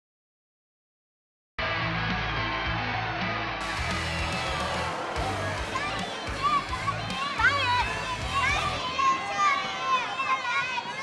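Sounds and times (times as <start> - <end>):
children shouting: 3.6 - 11.0.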